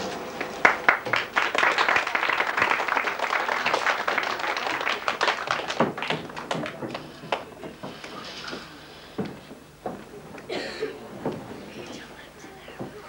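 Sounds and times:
audience applauding: 0.0s - 7.9s.

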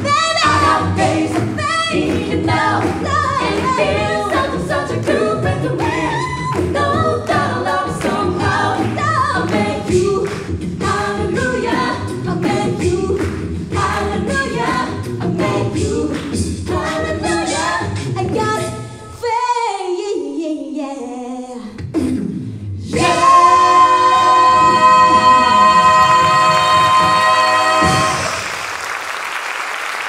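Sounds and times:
a cappella group singing: 0.0s - 19.7s, 22.8s - 28.5s
woman singing lead: 0.0s - 21.8s, 22.9s - 28.4s.

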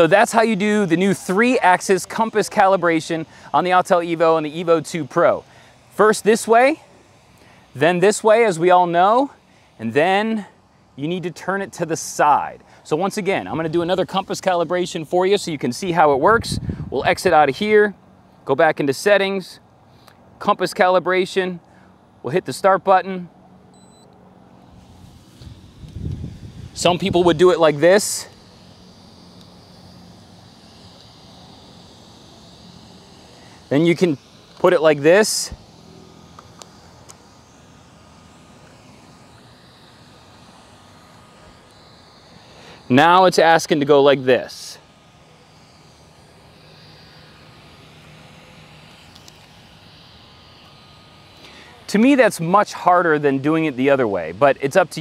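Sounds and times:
distant engine hum: 0.0s - 55.0s.

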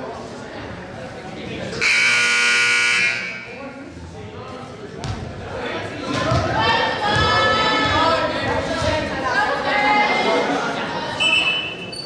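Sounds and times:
low chatter of voices: 0.0s - 12.0s
scoreboard buzzer: 1.8s - 3.5s.

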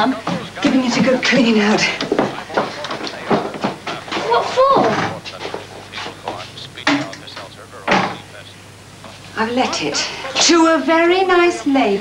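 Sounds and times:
door closing thud: 7.9s - 8.2s.

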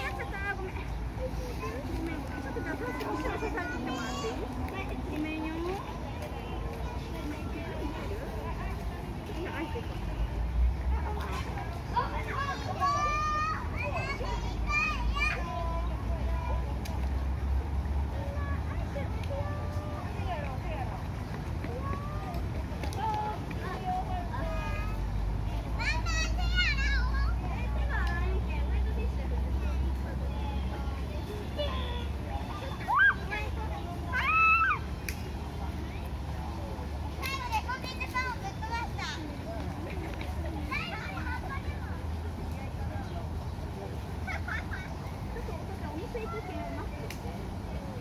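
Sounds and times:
children calling and chattering: 0.0s - 48.0s.

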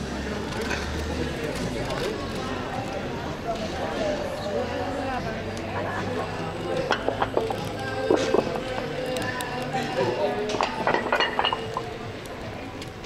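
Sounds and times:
background music: 0.0s - 13.0s
people chatting: 0.0s - 13.0s
tableware and glasses clinking: 5.8s - 9.1s, 9.8s - 12.0s.

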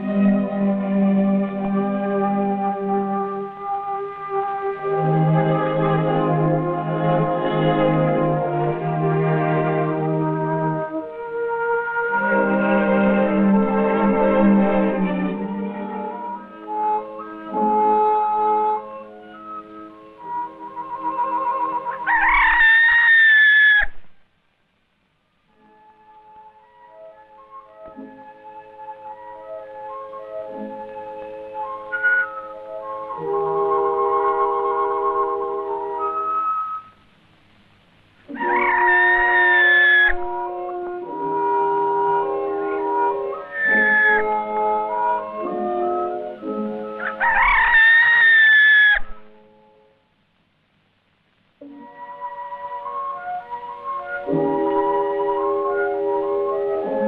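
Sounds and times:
soft film score music: 0.0s - 23.0s, 24.6s - 57.0s
rooster crowing: 21.8s - 24.0s, 31.9s - 32.4s, 38.4s - 40.6s, 43.4s - 44.4s, 47.0s - 49.3s.

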